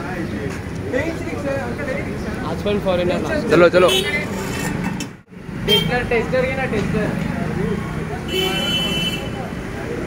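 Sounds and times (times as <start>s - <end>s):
vehicles on street: 0.0s - 10.0s
people's voices: 5.6s - 10.0s.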